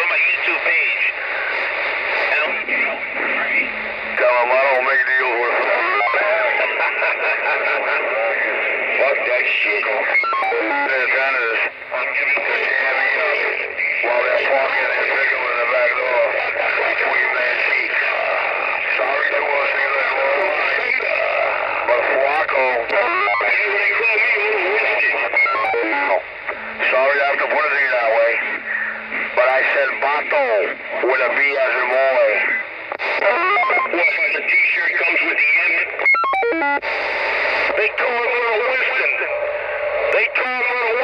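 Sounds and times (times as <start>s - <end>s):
distorted radio voices: 0.0s - 41.0s
music over radio: 0.0s - 41.0s.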